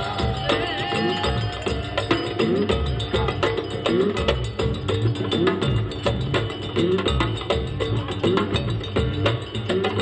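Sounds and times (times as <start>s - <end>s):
bass guitar: 0.0s - 10.0s
knocking percussion rhythm: 0.0s - 10.0s.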